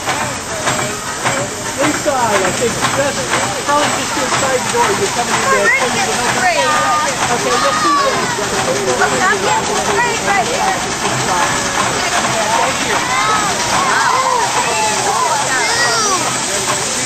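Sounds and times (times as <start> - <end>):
people talking: 0.0 - 17.0
steam hissing: 0.0 - 17.0.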